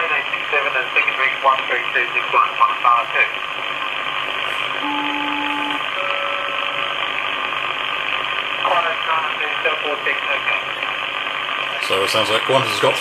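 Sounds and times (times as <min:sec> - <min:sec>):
two-tone radio call: 0:00.0 - 0:03.4, 0:04.8 - 0:07.2, 0:08.6 - 0:11.0
radio receiver hiss: 0:00.0 - 0:13.0.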